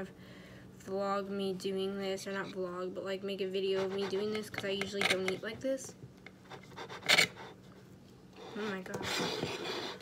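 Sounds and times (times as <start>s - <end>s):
knife sawing through food: 3.7s - 4.6s, 6.5s - 7.6s, 8.4s - 10.0s
knife scrape on plate: 6.5s - 7.6s, 8.5s - 10.0s.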